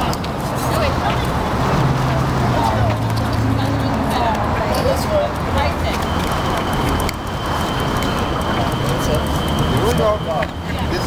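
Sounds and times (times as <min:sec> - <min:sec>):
people talking: 0:00.0 - 0:11.0
traffic rumble: 0:00.0 - 0:11.0.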